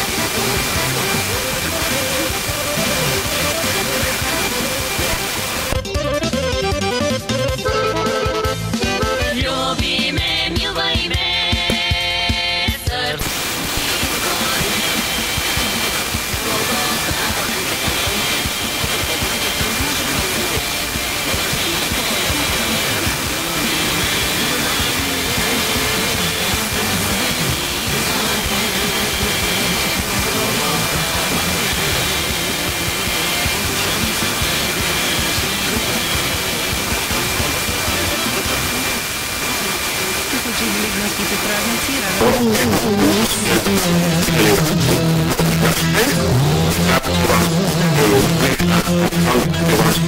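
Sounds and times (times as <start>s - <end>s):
faint radio music: 0.0s - 50.0s
radio static hiss: 0.0s - 50.0s.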